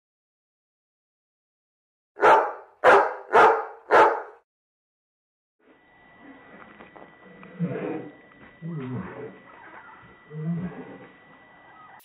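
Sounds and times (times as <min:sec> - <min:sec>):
dog barking: 0:02.2 - 0:04.4.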